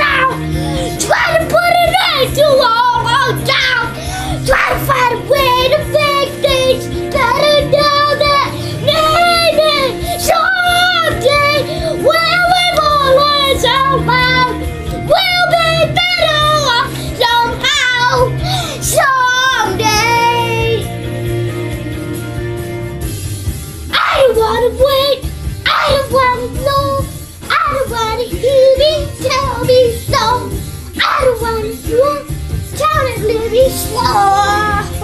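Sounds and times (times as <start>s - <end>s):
boy singing loudly: 0.0s - 0.4s, 1.0s - 20.8s, 23.9s - 35.0s
karaoke backing track: 0.0s - 35.0s.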